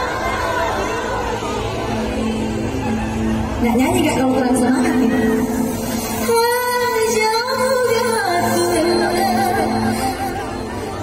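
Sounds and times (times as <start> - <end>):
woman singing into a microphone: 6.2 - 11.0.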